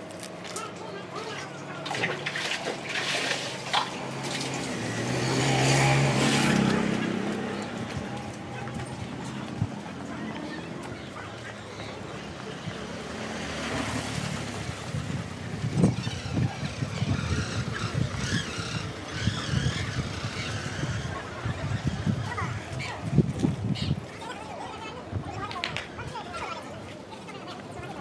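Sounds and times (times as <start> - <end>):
faint voices: 0.0 - 28.0
traffic: 0.0 - 28.0.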